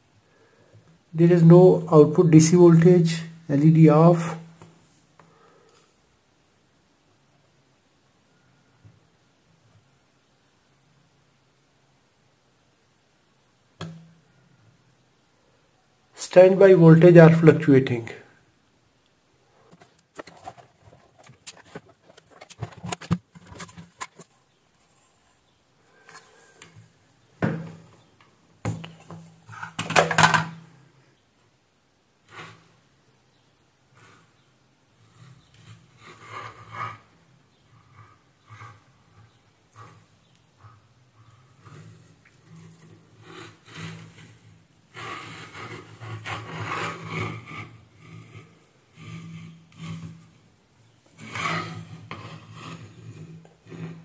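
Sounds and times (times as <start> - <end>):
rubbing and scraping handling noise: 1.2 - 6.0, 19.5 - 30.8, 32.2 - 32.8, 33.9 - 54.0
metal cover scraping: 19.7 - 24.4.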